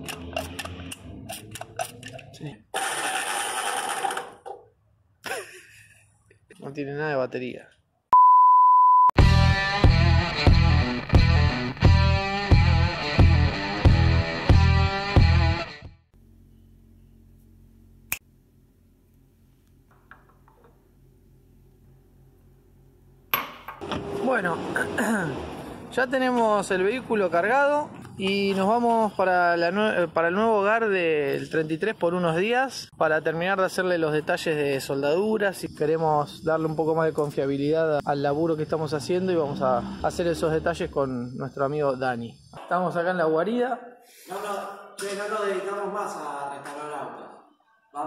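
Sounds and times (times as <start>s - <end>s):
starter motor spinning: 2.8s - 4.5s.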